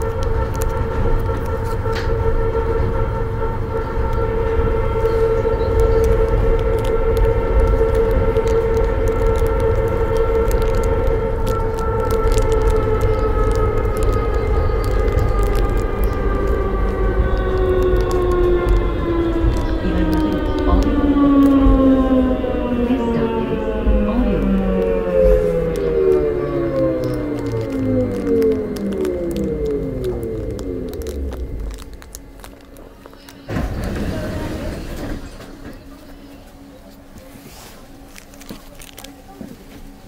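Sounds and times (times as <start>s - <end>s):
electric train drive whining: 0.0s - 36.7s
low rumble: 0.0s - 36.7s.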